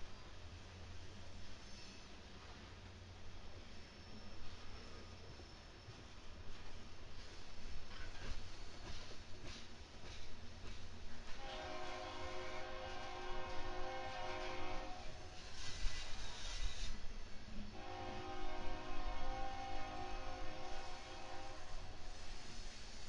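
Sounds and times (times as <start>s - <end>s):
freight train rumbling past: 0.0s - 23.0s
locomotive horn blasts: 11.4s - 15.2s, 17.8s - 21.9s.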